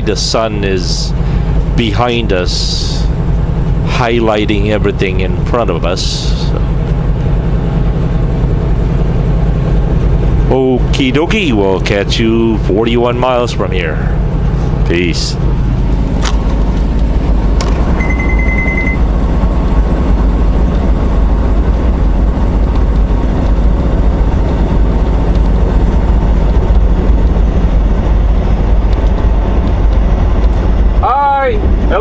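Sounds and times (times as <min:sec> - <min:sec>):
truck engine and road noise: 0:00.0 - 0:32.0
rapid electronic beeps: 0:18.0 - 0:19.1.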